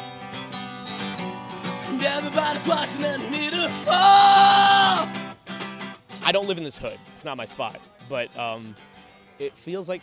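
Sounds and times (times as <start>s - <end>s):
acoustic guitar: 0.0s - 10.0s
man singing: 1.6s - 5.3s.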